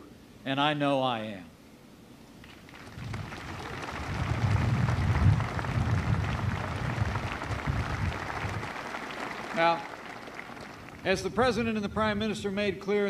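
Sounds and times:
large crowd applauding: 2.4 - 11.3
low rumble: 3.0 - 8.8.

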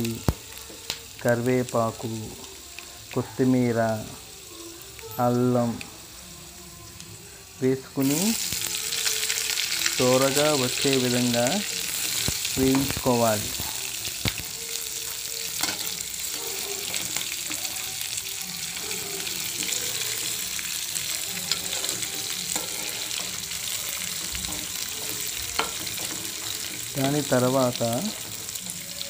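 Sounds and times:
food sizzling in hot oil: 0.0 - 29.0.

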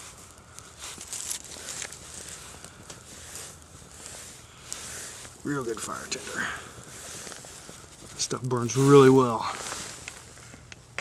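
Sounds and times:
faint fire crackles: 0.0 - 11.0
small fire hissing: 0.0 - 11.0.

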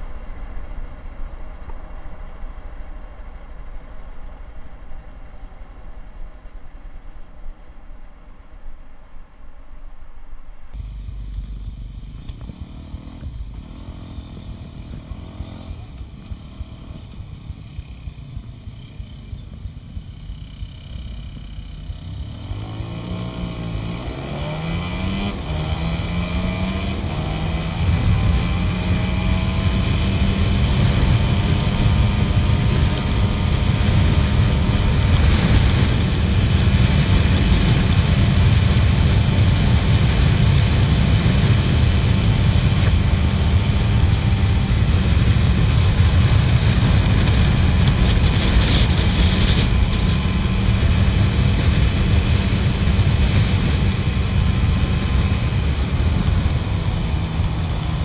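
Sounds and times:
small motorcycle engine: 10.8 - 58.0
wind on microphone: 10.8 - 58.0.

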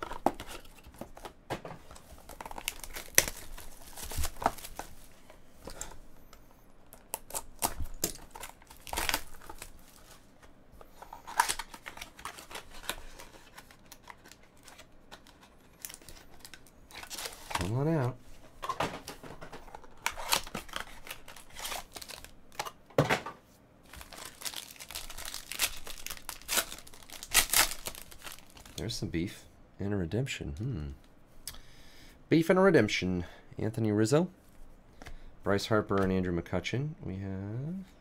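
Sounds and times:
wrapper and cardboard crinkling: 0.0 - 5.1, 6.9 - 10.2, 11.0 - 22.8, 23.9 - 29.0.

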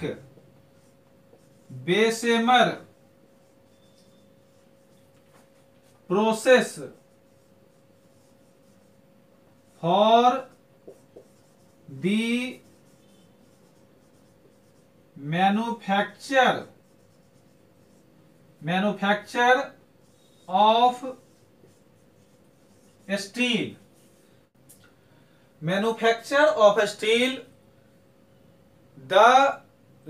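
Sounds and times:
marker writing on whiteboard: 0.0 - 19.4, 20.0 - 24.3.

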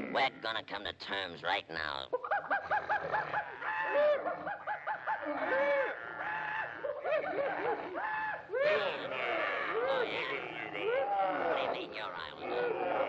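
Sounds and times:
cartoon voices laughing: 0.0 - 13.0.

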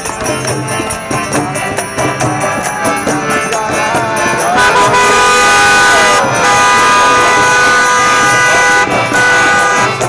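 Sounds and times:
car horn long blast: 4.2 - 10.0.

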